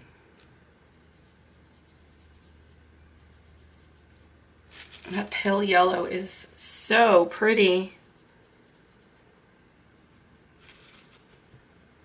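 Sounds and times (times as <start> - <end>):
steady low hum: 0.0 - 12.0
brush strokes on paper: 0.8 - 5.6, 6.9 - 11.5.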